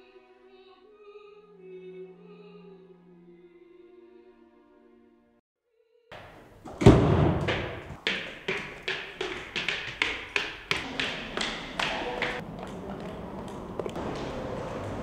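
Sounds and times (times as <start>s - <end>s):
high heels on stone stairs: 6.2s - 14.3s
door shutting with a thud: 6.6s - 8.0s.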